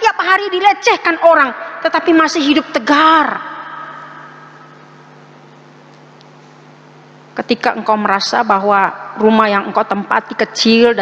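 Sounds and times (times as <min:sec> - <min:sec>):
room echo of speech: 0:00.0 - 0:05.1, 0:07.4 - 0:11.0
steady low hum: 0:00.0 - 0:11.0.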